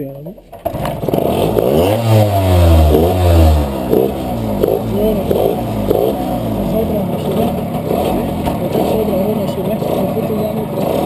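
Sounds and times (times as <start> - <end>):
two-stroke moped engine revving: 0.5 - 11.0.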